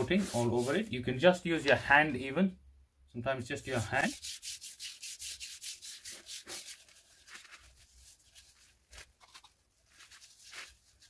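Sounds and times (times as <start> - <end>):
hand rubbing oiled wood: 0.0 - 0.9, 3.8 - 11.0.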